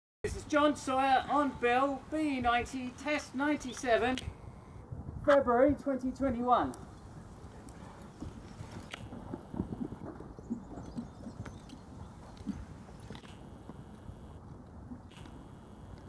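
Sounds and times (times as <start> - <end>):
horse hoofbeats on sand: 7.0 - 13.9.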